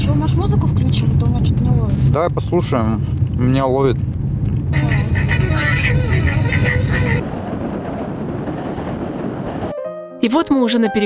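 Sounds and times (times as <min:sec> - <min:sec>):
road rumble inside moving car: 0:00.0 - 0:07.2
voices: 0:04.7 - 0:07.2.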